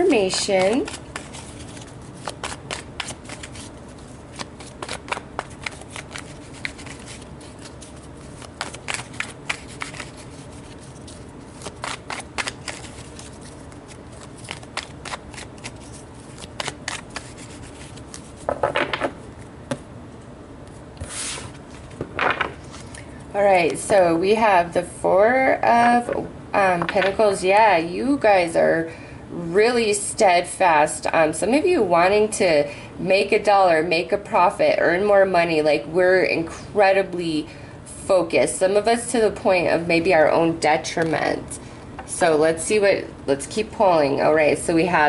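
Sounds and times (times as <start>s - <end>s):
cards being shuffled: 0.2s - 19.8s.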